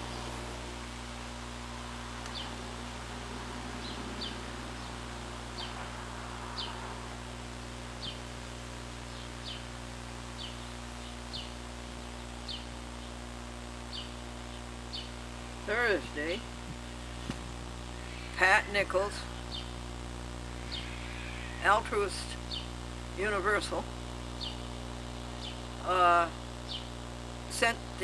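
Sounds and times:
small bird chirping: 0:00.0 - 0:07.2, 0:07.8 - 0:28.0
steady low hum: 0:00.0 - 0:28.0.

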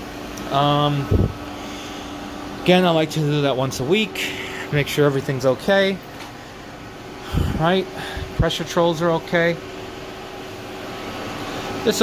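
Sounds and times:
boiler room machinery drone: 0:00.0 - 0:12.0
constant hum tone: 0:00.0 - 0:12.0.

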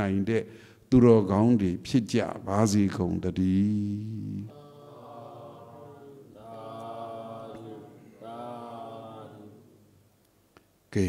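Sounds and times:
person chanting: 0:02.4 - 0:09.8.

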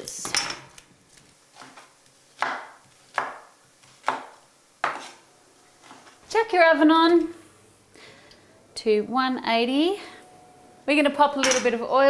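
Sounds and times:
knife chopping on wooden board: 0:01.6 - 0:05.2.

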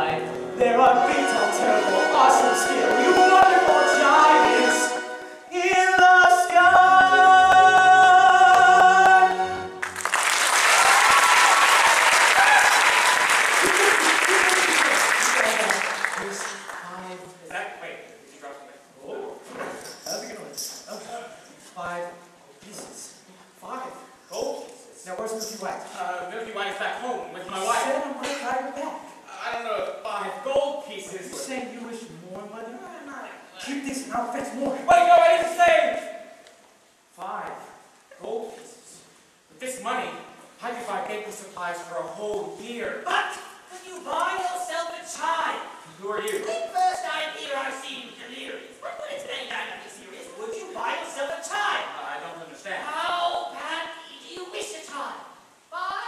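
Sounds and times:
actors speaking: 0:00.0 - 0:07.9, 0:13.6 - 0:36.2, 0:37.2 - 0:56.0.

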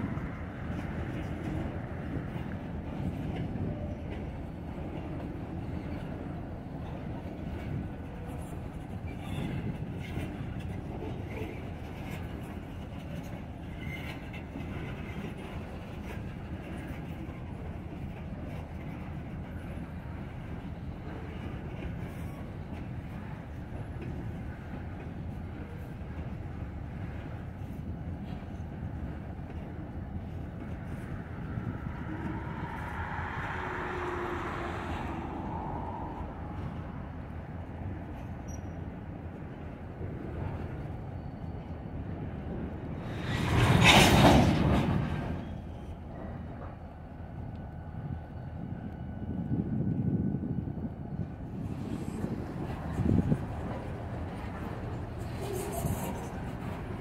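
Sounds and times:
freight train rumbling on rails: 0:00.0 - 0:57.0
loud rush of noise: 0:31.1 - 0:37.3.

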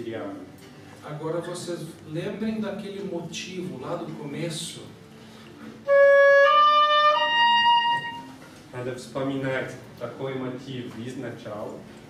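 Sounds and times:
oboe playing held notes: 0:05.6 - 0:08.5.

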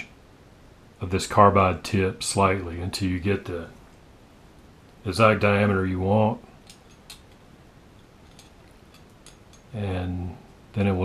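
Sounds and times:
room hiss: 0:00.0 - 0:11.0
faint metallic clicks: 0:06.6 - 0:09.8.

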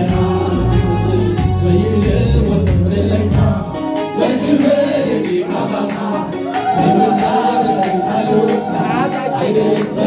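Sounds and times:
gospel song sung by voices: 0:00.0 - 0:10.0
musical accompaniment: 0:00.0 - 0:10.0.

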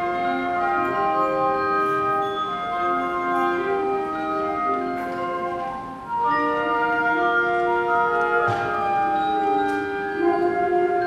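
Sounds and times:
concert band playing sustained chords: 0:00.0 - 0:11.0.

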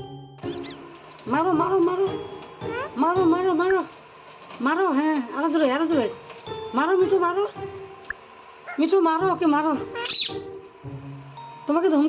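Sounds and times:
parakeet chirps: 0:00.0 - 0:00.9, 0:02.6 - 0:03.0, 0:10.0 - 0:10.4
music with bell-like notes: 0:00.0 - 0:03.8, 0:05.9 - 0:08.5, 0:10.9 - 0:12.0
wavering voice-like bird call: 0:00.4 - 0:00.8, 0:10.0 - 0:10.4.

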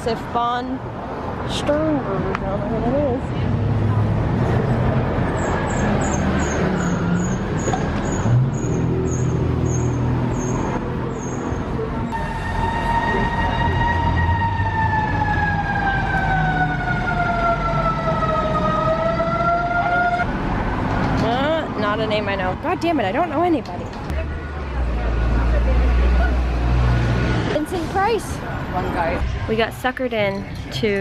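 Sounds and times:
city street traffic rumble: 0:00.0 - 0:31.0
emergency siren wailing: 0:11.8 - 0:20.9.

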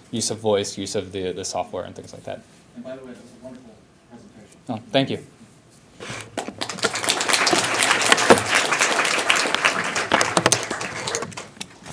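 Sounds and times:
audience applauding: 0:06.4 - 0:11.6.

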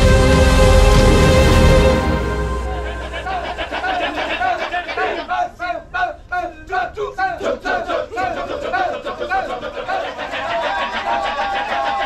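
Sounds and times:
men chanting rhythmic shouts: 0:03.1 - 0:12.0.

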